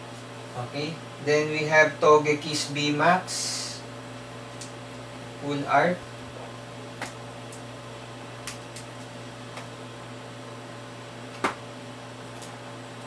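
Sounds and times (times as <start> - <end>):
electrical hum: 0.0 - 13.0.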